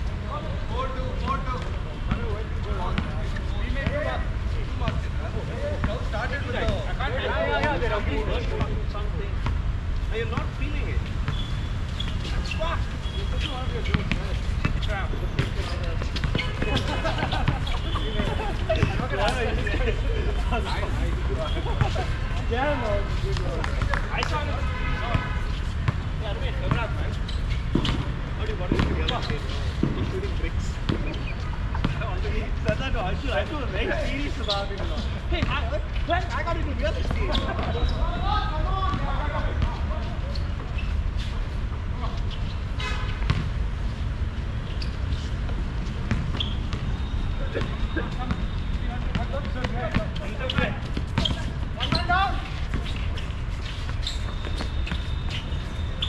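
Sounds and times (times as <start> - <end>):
players' voices: 0.0 - 56.0
basketball bouncing on hard court: 27.7 - 30.1, 43.2 - 43.5, 46.0 - 47.0.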